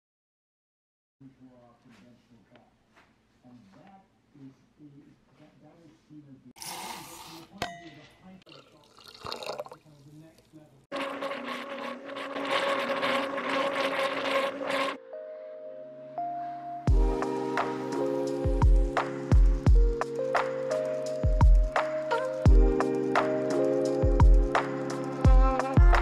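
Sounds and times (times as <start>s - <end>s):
water splashing into blender jar: 8.5s - 15.0s
blender motor whirring: 10.9s - 15.0s.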